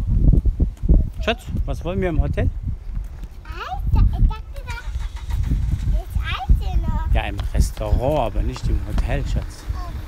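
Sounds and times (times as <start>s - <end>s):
children speaking: 3.4s - 7.2s, 9.6s - 10.0s
low rumble: 4.6s - 9.8s.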